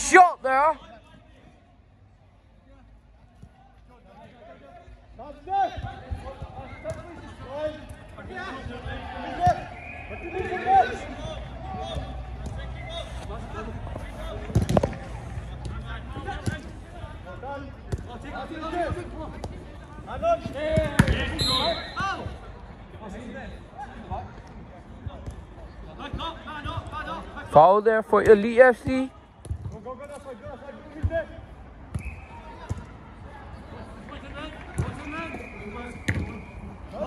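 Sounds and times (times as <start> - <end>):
players shouting: 4.5 - 19.1.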